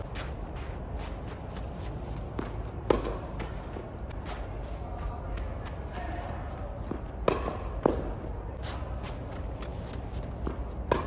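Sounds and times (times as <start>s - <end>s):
light shuffling footsteps: 0.0s - 2.9s
tennis balls hit by racket: 1.5s - 4.6s, 6.8s - 8.3s, 9.4s - 11.0s
balls bouncing on hard court: 1.6s - 8.3s, 9.0s - 11.0s.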